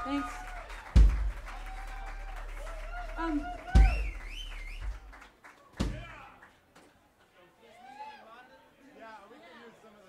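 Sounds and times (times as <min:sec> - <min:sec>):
applause: 0:00.0 - 0:07.0
crowd noise: 0:00.0 - 0:10.0
heavy low drum hit: 0:01.0 - 0:02.1, 0:03.2 - 0:04.2.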